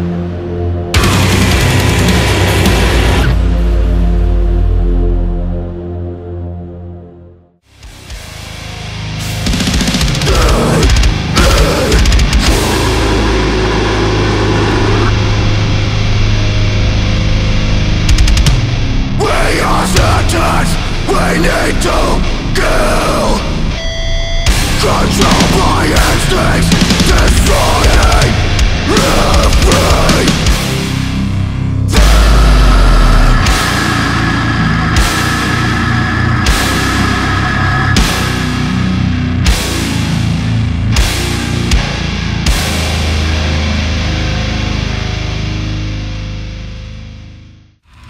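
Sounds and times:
distorted heavy guitars: 0:00.0 - 0:05.8, 0:07.7 - 0:48.0
heavy metal band music: 0:00.0 - 0:06.6, 0:07.6 - 0:48.0
deep bass drop: 0:00.9 - 0:06.0, 0:09.3 - 0:23.8, 0:24.4 - 0:43.8
drums and cymbals: 0:01.0 - 0:03.4, 0:09.2 - 0:15.0, 0:24.5 - 0:31.0, 0:31.9 - 0:40.3.

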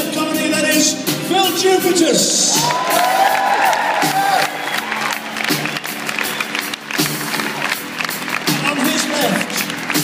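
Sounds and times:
drums: 0:00.0 - 0:10.0
audience cheering and applauding: 0:02.4 - 0:10.0.

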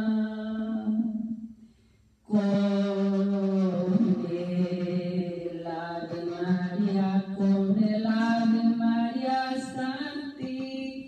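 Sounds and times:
woman singing into microphone: 0:00.0 - 0:01.4, 0:02.3 - 0:11.0.

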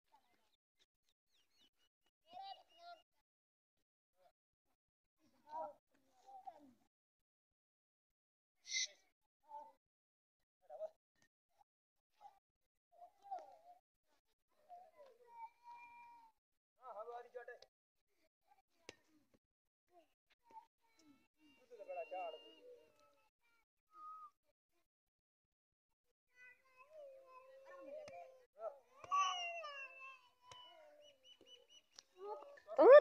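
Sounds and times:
children's voices: 0:26.4 - 0:28.3
child shouting: 0:29.0 - 0:30.8, 0:32.4 - 0:33.0
children calling out: 0:32.8 - 0:33.0.

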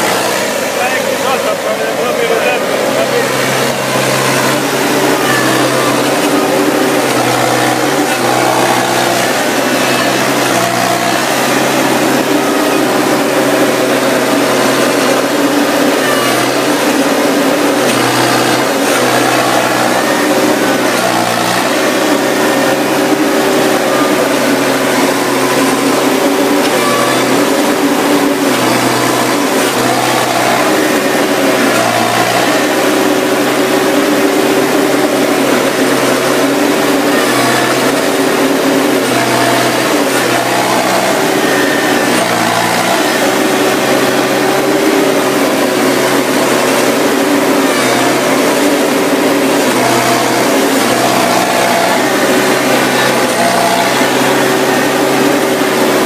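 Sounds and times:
harvester engine running: 0:00.0 - 0:56.0.

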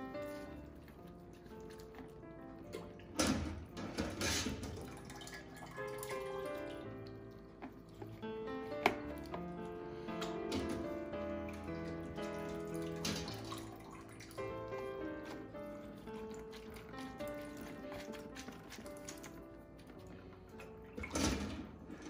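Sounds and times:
background music: 0:00.0 - 0:22.0
whey splashing and dripping: 0:00.0 - 0:22.0.

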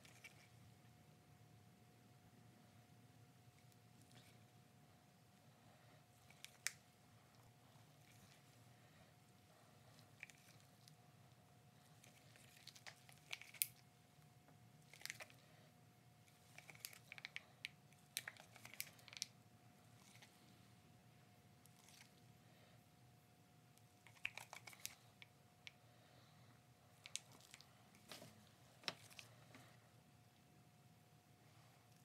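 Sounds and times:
faint steady hum: 0:00.0 - 0:32.0
gloved hands crinkling plastic bottle: 0:16.4 - 0:19.3, 0:24.1 - 0:25.0.

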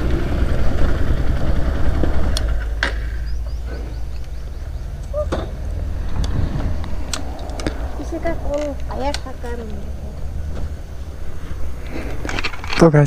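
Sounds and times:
motorcycle engine rumbling: 0:00.0 - 0:13.0.

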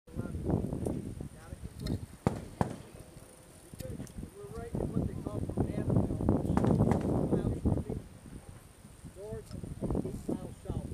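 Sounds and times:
sharp knocks: 0:02.2 - 0:02.8.

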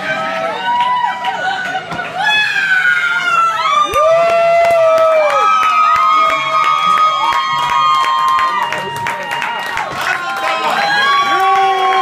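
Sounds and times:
people cheering with high cries: 0:00.0 - 0:12.0
people clapping: 0:00.0 - 0:12.0.

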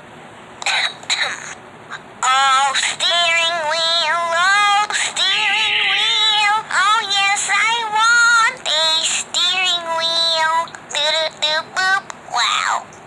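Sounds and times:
girl singing: 0:02.2 - 0:12.9.

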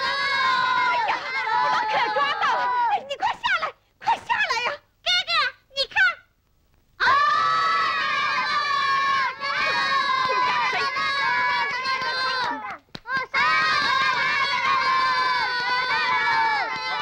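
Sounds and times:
children shouting and cheering: 0:00.0 - 0:03.5, 0:07.0 - 0:17.0.

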